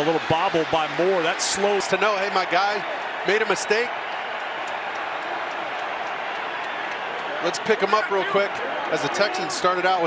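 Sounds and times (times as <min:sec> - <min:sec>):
stadium crowd hubbub: 0:00.0 - 0:10.0.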